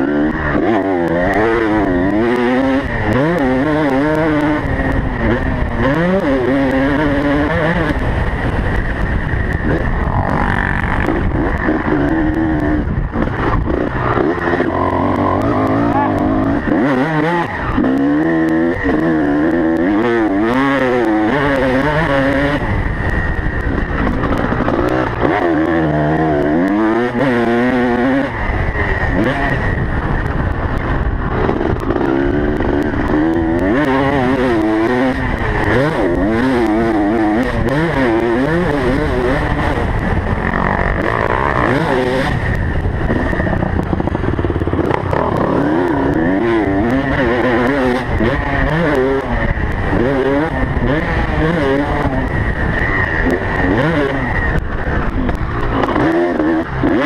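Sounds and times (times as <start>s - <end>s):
motocross bike engine revving: 0.0s - 57.0s.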